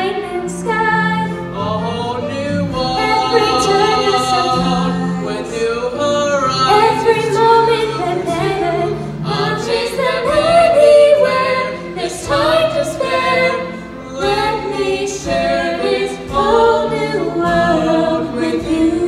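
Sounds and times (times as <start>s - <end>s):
children's choir singing: 0.0s - 19.0s.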